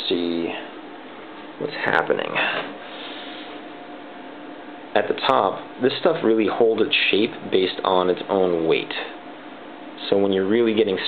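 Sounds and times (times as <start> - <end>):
faint even hum: 0.0 - 11.0.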